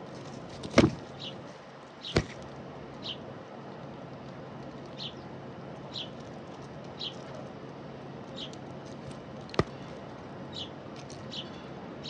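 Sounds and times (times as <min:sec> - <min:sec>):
doves feeding: 0:00.0 - 0:12.0
small birds chirping: 0:01.0 - 0:02.4, 0:03.0 - 0:03.9, 0:04.6 - 0:07.6, 0:08.2 - 0:12.0.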